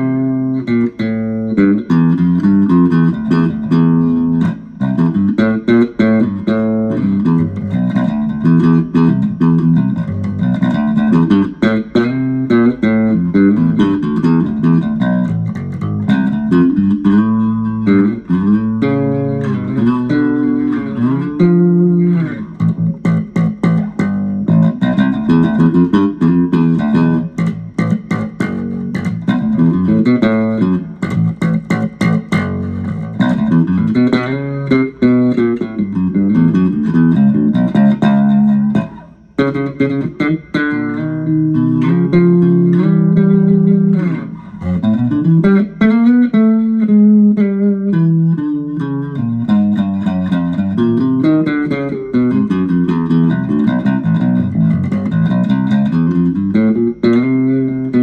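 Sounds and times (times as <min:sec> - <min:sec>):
electric bass played fingerstyle: 0:00.0 - 0:58.0.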